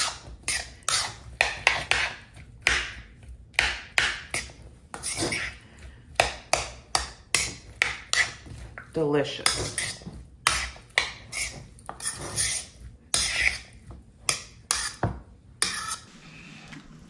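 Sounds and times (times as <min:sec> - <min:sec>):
metal spoon scraping plastic bowl: 0:00.0 - 0:02.3, 0:04.3 - 0:05.6, 0:09.3 - 0:16.8.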